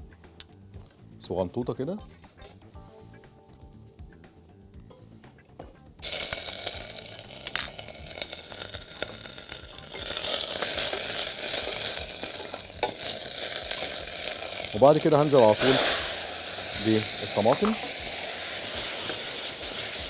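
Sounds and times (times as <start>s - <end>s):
garlic sizzling in oil: 6.0s - 20.0s.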